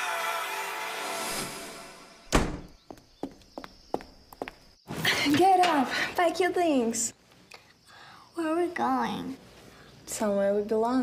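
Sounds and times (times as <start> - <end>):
door shutting: 2.3 - 2.8
footsteps on hard floor: 2.8 - 4.7.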